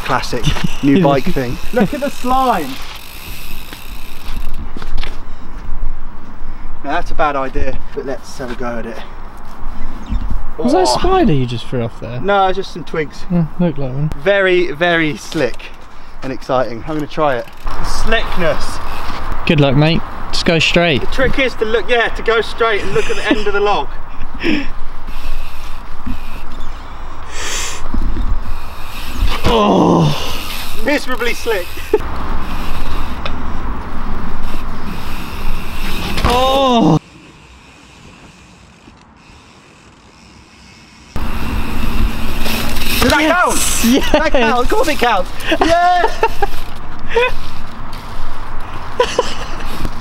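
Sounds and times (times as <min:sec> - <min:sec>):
bike wheeled on dirt trail: 0:00.0 - 0:11.6, 0:14.2 - 0:50.0
short hiss: 0:27.3 - 0:27.9
bike tyres rumbling on log: 0:34.6 - 0:36.8, 0:41.3 - 0:43.8.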